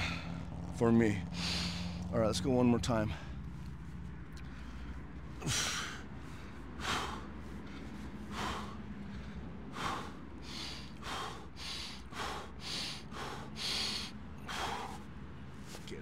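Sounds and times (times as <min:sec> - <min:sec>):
man breathing forcefully: 0:00.0 - 0:00.6, 0:01.3 - 0:02.1, 0:03.0 - 0:15.8.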